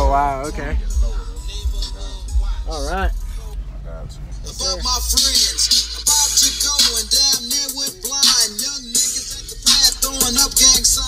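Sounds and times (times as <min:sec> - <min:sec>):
crisp hi-hats: 0:00.0 - 0:11.0
deep subwoofer bass: 0:00.0 - 0:11.0
rap track through car audio: 0:00.0 - 0:11.0
rapped vocals: 0:00.0 - 0:11.0.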